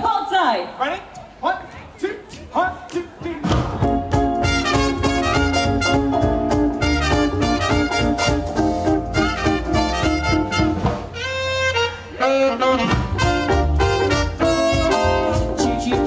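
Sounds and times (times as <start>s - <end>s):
swing band playing: 2.2s - 16.0s.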